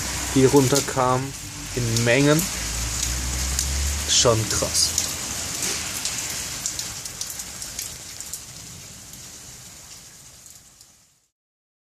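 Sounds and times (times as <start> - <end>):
rain hissing on wet surface: 0.0 - 11.3
raindrops ticking: 0.0 - 11.3.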